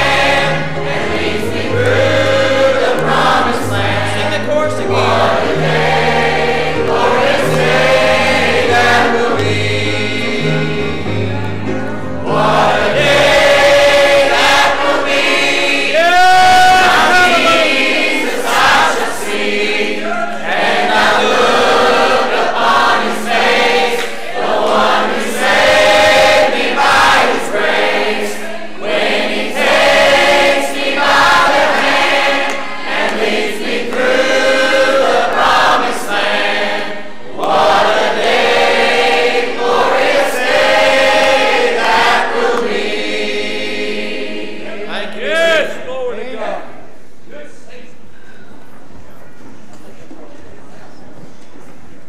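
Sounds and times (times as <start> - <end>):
choir singing slow gospel song: 0.0 - 45.8.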